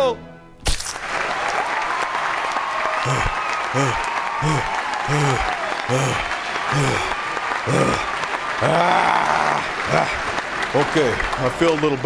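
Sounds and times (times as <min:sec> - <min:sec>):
audience applause: 0:00.9 - 0:12.0
person panting: 0:03.0 - 0:10.4.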